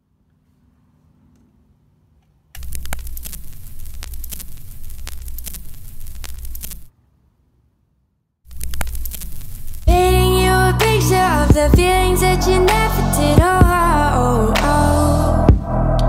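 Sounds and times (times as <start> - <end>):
vinyl crackle and pops: 2.6 - 6.9, 8.5 - 10.0
low hum: 8.5 - 16.0.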